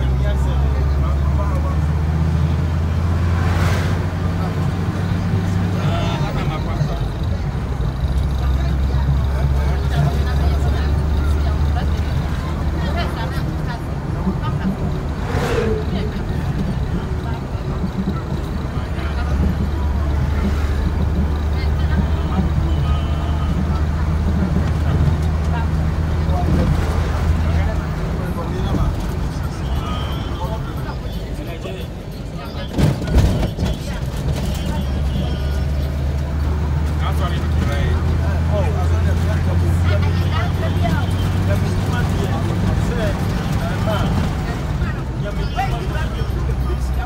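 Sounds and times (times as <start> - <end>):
oncoming vehicles rushing past: 0.0 - 32.1
vehicle engine and road drone: 0.0 - 47.0.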